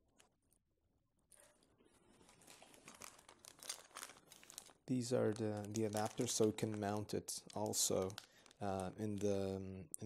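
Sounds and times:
plastic bag crinkling: 1.3s - 9.6s.

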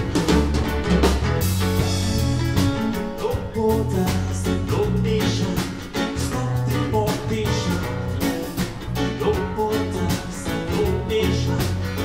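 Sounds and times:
live band playing: 0.0s - 12.0s
person singing: 3.0s - 8.2s, 9.0s - 12.0s.

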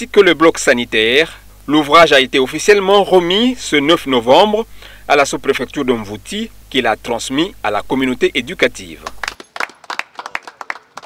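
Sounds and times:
people clapping: 9.0s - 11.0s.

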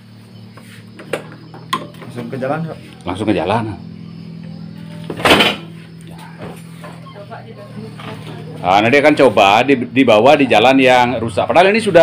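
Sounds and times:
scooter engine idling: 0.0s - 12.0s.

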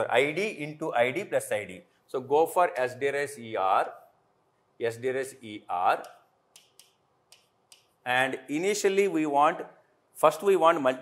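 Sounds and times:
marker clicking on glass board: 6.0s - 8.0s.

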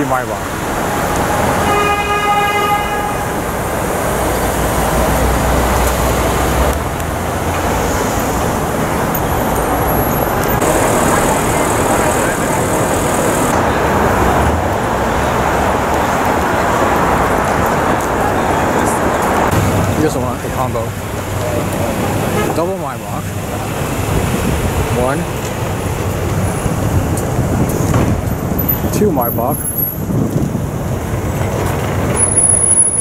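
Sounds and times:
passing cars: 0.0s - 33.0s
car horn tooting: 1.6s - 3.5s, 22.3s - 22.7s.

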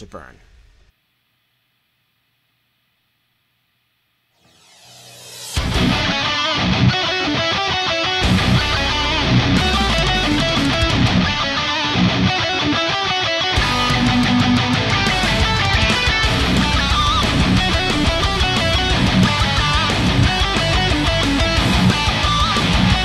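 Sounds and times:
electric guitar heavy metal riffs: 5.4s - 23.0s.

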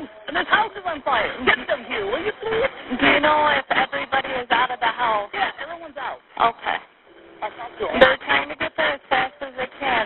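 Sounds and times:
voices talking over telephone line: 0.0s - 10.0s.

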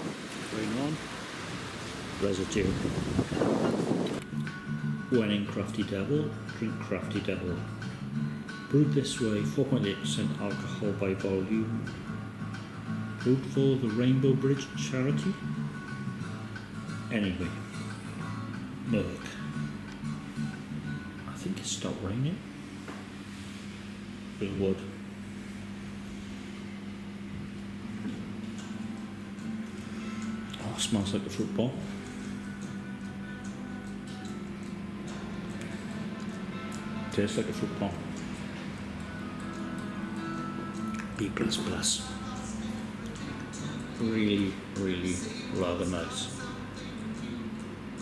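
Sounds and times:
wind on microphone: 0.0s - 0.5s, 1.3s - 4.2s
faint room hiss: 0.0s - 48.0s
low mechanical hum: 0.0s - 48.0s
quiet background music: 0.2s - 48.0s.

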